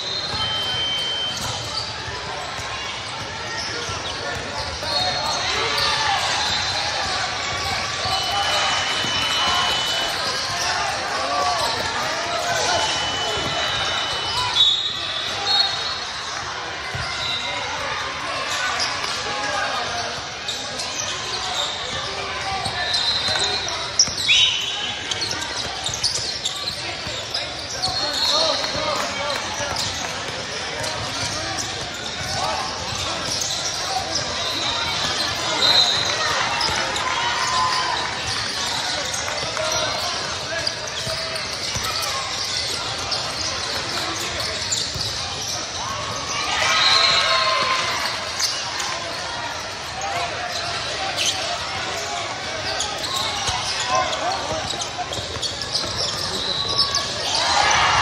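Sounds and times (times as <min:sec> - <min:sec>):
shoe squeaks: 0:00.0 - 0:16.2, 0:20.1 - 0:57.9.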